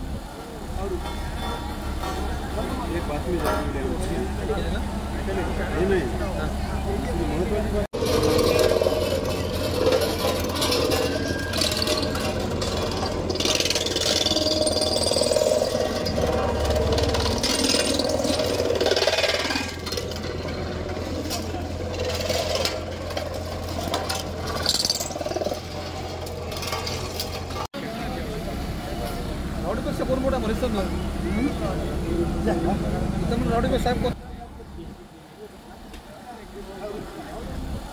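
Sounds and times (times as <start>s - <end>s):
diesel engine drone: 0.0s - 35.8s
voices: 0.0s - 37.9s
metal crunching and creaking: 8.0s - 27.7s.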